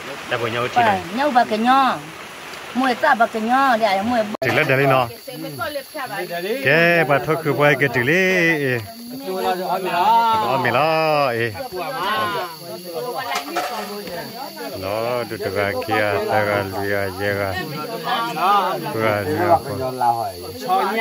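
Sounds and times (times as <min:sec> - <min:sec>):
people talking: 0:00.0 - 0:02.1, 0:02.8 - 0:21.0.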